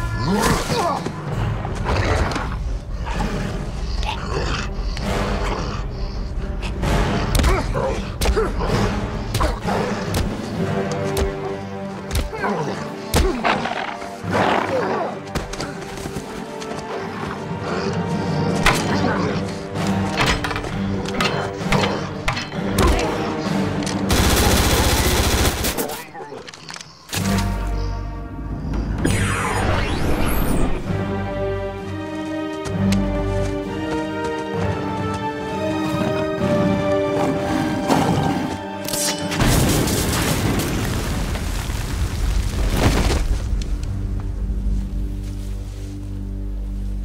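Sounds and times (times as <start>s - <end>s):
background music: 0.0s - 41.5s, 42.6s - 47.0s.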